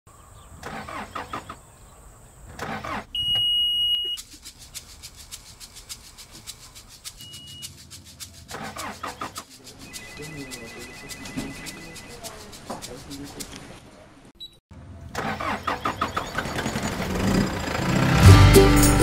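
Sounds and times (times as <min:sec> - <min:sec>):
high beep: 0:03.2 - 0:04.2, 0:07.2 - 0:07.7, 0:09.9 - 0:12.0
fast even ticking: 0:04.0 - 0:13.6
diesel engine running roughly: 0:15.2 - 0:18.5.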